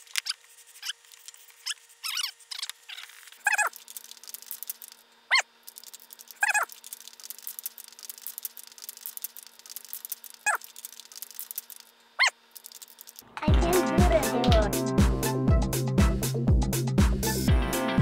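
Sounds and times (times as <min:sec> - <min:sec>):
spray can rattling: 0:00.0 - 0:05.0, 0:05.6 - 0:11.9, 0:12.5 - 0:13.2
high-pitched yelps: 0:03.4 - 0:03.8, 0:06.4 - 0:06.7.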